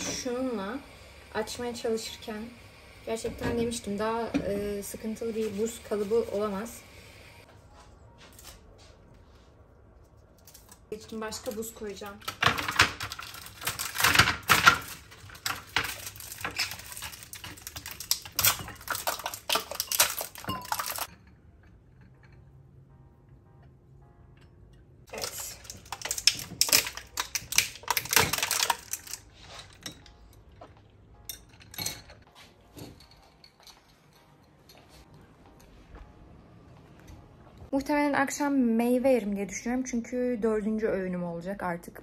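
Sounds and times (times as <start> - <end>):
ice cubes clinking in glass: 12.5 - 21.1, 25.1 - 29.2.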